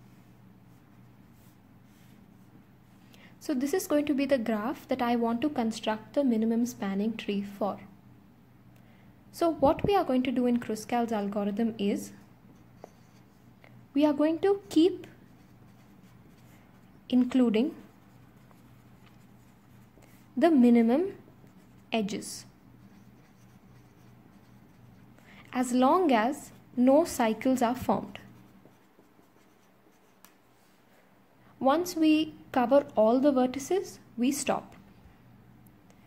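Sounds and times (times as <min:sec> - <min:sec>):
marker scratching on paper: 0:12.6 - 0:13.5, 0:14.5 - 0:20.3, 0:21.4 - 0:25.2, 0:28.0 - 0:30.4.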